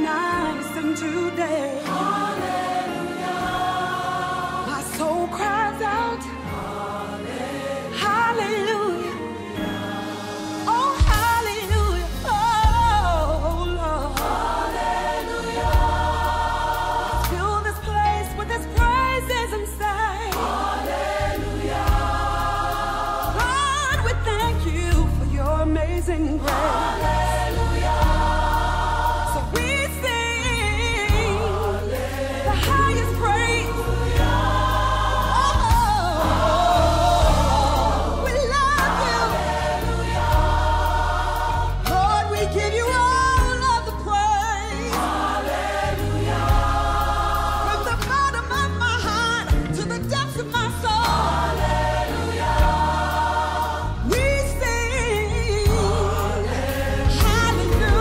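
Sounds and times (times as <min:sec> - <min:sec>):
gospel choir singing: 0:00.0 - 0:58.0
instrumental backing with bass: 0:00.0 - 0:58.0.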